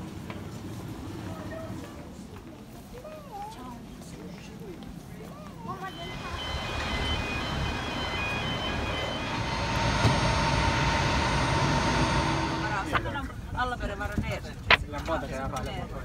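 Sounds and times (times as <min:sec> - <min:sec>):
jet aircraft rushing and whining: 0:05.9 - 0:13.2.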